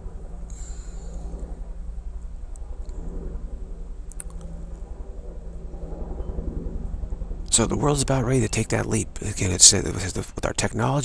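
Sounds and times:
faint background noise: 0:00.0 - 0:11.0
steady low hum: 0:00.0 - 0:11.0.

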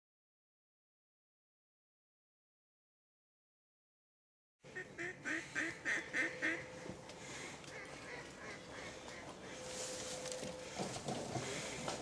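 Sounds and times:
ducks quacking: 0:04.7 - 0:09.9.

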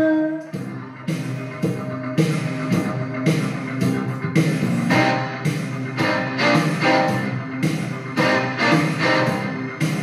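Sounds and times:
rock band backing track: 0:00.6 - 0:10.0.

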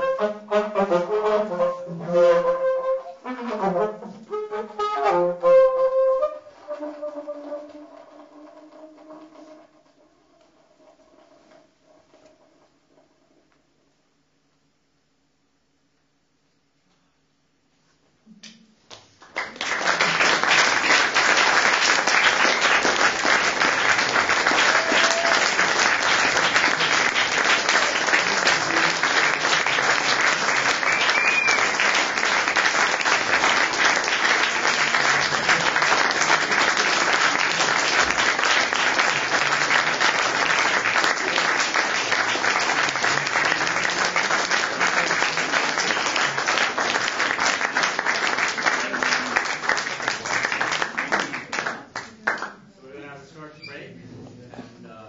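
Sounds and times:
audience applause: 0:19.2 - 0:52.5.

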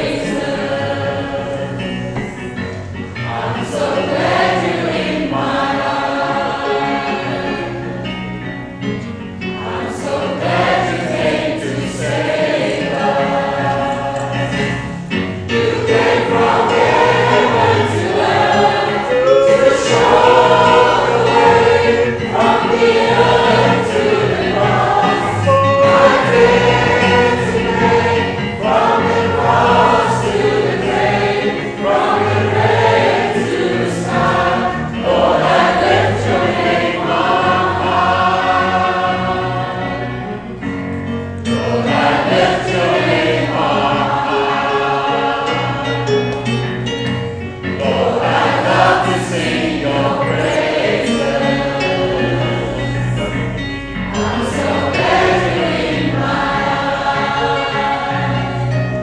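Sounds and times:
congregation and choir singing: 0:00.0 - 0:59.0.

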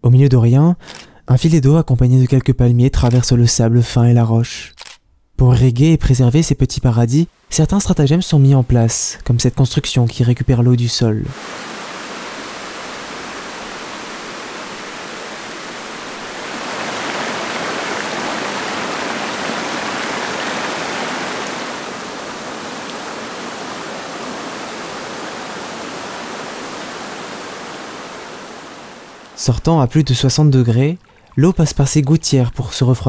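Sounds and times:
water splashing down steps: 0:11.3 - 0:28.3.

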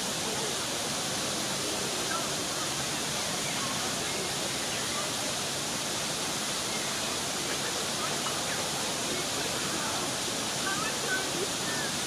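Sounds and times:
waterfall splashing onto rocks: 0:00.0 - 0:12.0.

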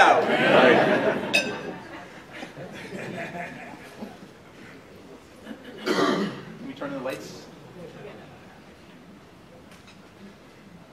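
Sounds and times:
person clearing throat: 0:05.5 - 0:06.6.

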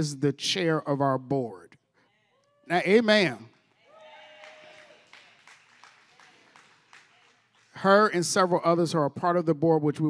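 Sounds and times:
hand clapping: 0:04.4 - 0:07.9.

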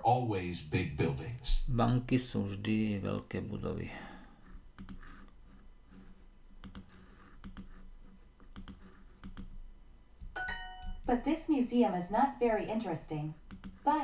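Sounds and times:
computer mouse clicks: 0:04.7 - 0:05.4, 0:06.6 - 0:07.8, 0:08.4 - 0:09.6, 0:13.5 - 0:13.8
bright app chime: 0:10.4 - 0:11.0.

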